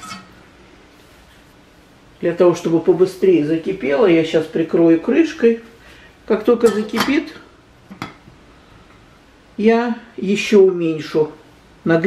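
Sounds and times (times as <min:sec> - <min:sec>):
metal spoon clinking pot: 0:00.0 - 0:00.4, 0:06.6 - 0:07.2
faint steady hiss: 0:00.0 - 0:12.0.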